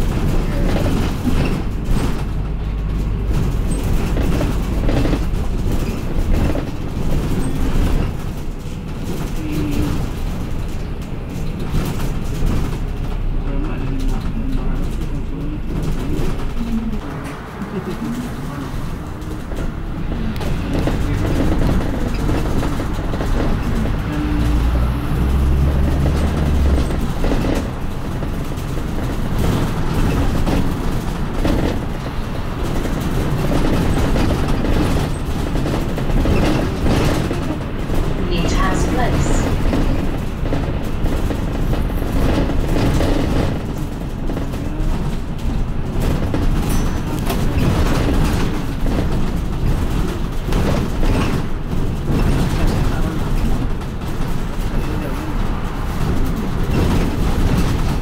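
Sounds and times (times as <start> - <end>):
bus body rattling: 0.0 - 58.0
bus engine and road noise: 0.0 - 58.0.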